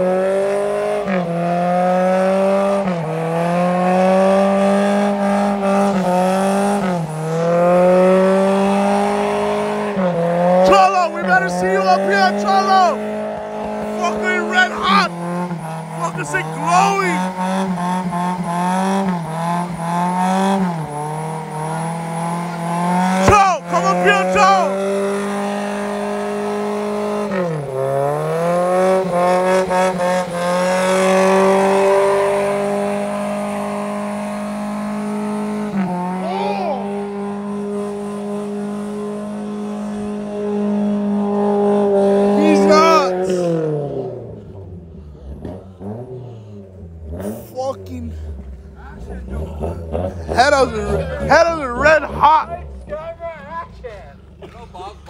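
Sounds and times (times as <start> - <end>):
engine revving high: 0.0 - 54.5
tyres spinning and squealing: 10.6 - 17.4.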